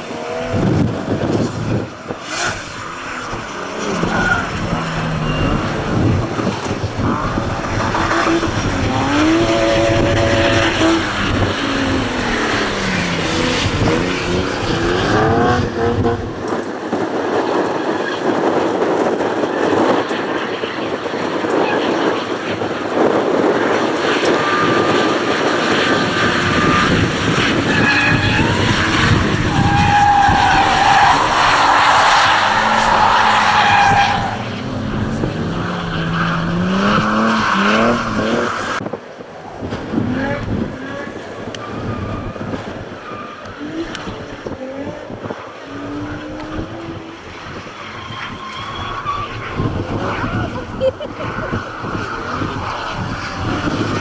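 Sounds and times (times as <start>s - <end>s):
tyre squeal and skidding: 0.0s - 15.9s, 17.1s - 38.8s, 39.9s - 54.0s
car engines revving: 0.0s - 54.0s.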